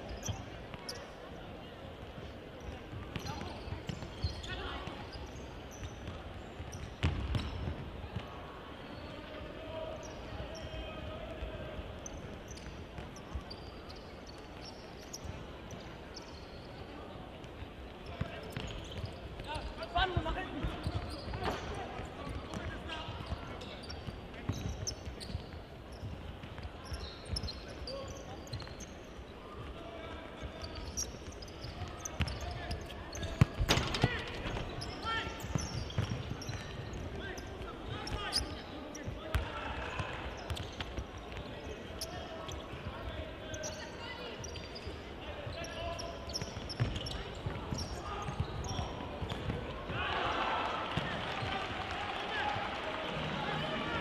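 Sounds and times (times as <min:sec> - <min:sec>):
echoing shouts: 0:49.8 - 0:54.0.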